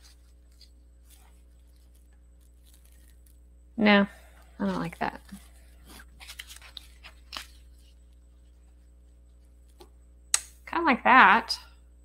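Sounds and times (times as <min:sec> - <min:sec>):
paper pieces rustling: 0:00.0 - 0:03.4, 0:04.6 - 0:08.0
low steady hum: 0:00.0 - 0:12.0.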